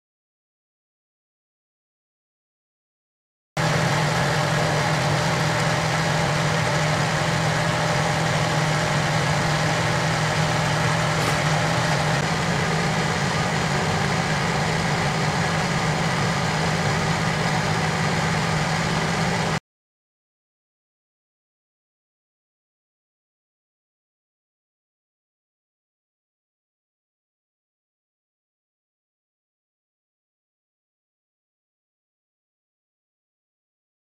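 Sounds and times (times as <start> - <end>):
milling machine droning: 3.6 - 19.6.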